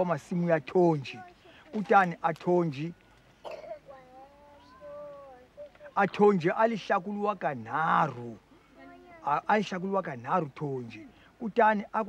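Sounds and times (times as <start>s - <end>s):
elderly man speaking: 0.0s - 3.0s, 5.8s - 8.6s, 9.2s - 12.0s.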